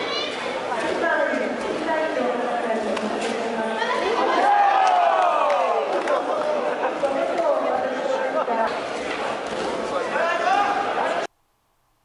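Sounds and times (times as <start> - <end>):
crowd voices and calls: 0.0 - 11.3.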